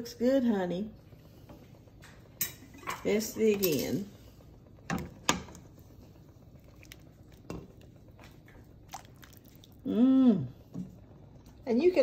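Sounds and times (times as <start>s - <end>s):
utensil clinking on steel pot: 2.4s - 4.1s.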